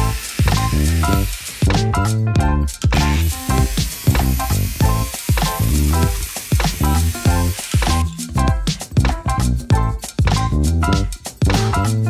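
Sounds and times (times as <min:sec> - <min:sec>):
angle grinder cutting steel: 0:00.0 - 0:01.9, 0:03.0 - 0:08.2
background music with beat: 0:00.0 - 0:12.0.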